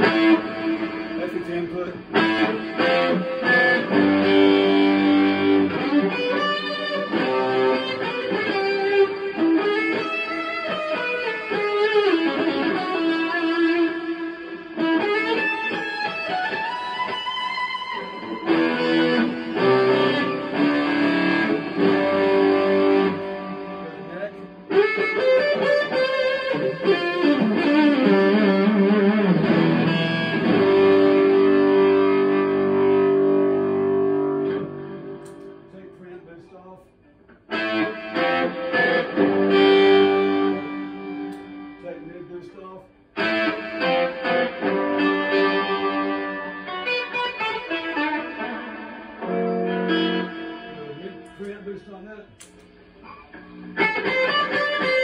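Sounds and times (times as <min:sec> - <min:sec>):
overdriven electric guitar: 0:00.0 - 0:55.0.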